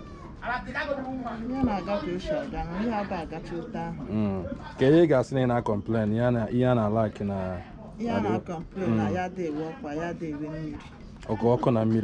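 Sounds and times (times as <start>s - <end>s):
woman talking: 1.5s - 4.0s, 8.0s - 10.9s.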